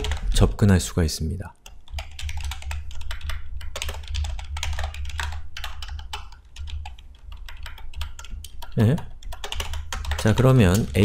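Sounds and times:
computer keyboard typing: 0:00.0 - 0:00.5, 0:01.6 - 0:11.0.

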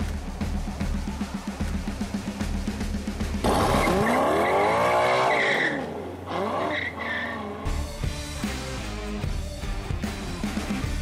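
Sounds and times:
sports car engine revving: 0:03.4 - 0:07.6
tires squealing: 0:03.4 - 0:07.7.

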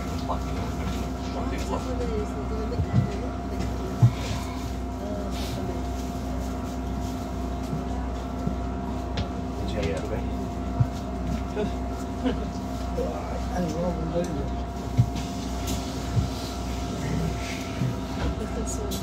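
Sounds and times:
bus hum: 0:00.0 - 0:19.0
passengers' voices: 0:00.0 - 0:19.0.

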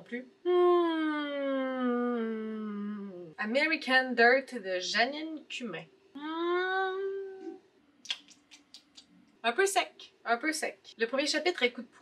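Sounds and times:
woman humming: 0:00.4 - 0:03.4, 0:06.2 - 0:07.6.

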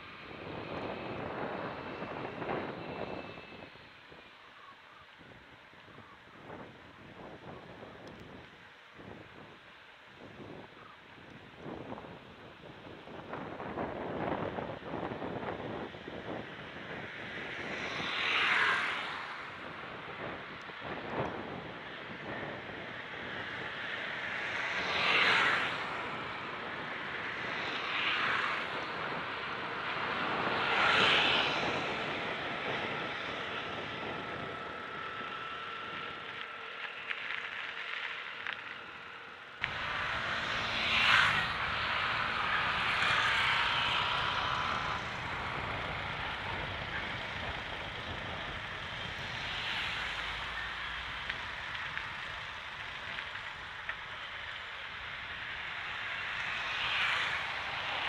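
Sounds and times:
wind rushing over microphone: 0:00.0 - 0:04.4, 0:05.2 - 0:36.7, 0:38.7 - 0:58.0
faint steady whine: 0:00.0 - 0:25.0, 0:25.6 - 0:58.0
bicycle tyres on paved road: 0:00.0 - 0:58.0.

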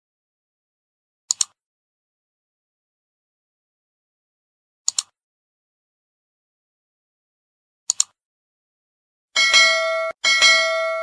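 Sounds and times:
notification bell ringing: 0:09.4 - 0:11.0.

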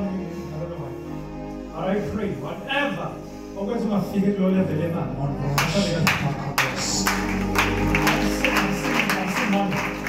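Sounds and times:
electronic keyboard worship music: 0:00.0 - 0:10.0.

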